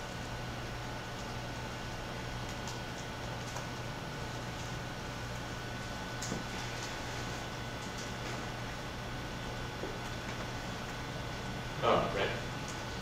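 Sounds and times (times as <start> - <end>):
room hum and hiss: 0.0 - 13.0.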